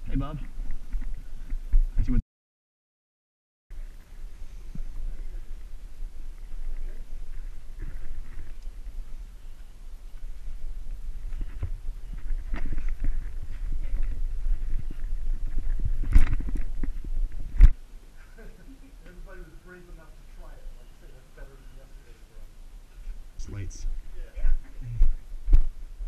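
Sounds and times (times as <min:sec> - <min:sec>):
camera jostling and rubbing: 0:07.3 - 0:09.2, 0:10.2 - 0:17.8.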